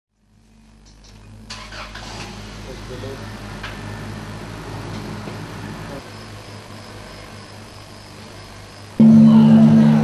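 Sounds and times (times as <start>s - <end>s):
voices: 2.6s - 8.3s, 9.0s - 10.0s.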